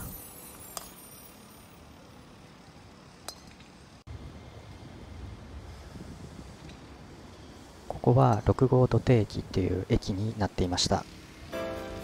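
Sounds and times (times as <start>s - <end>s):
faint open-air ambience: 0.0s - 12.0s.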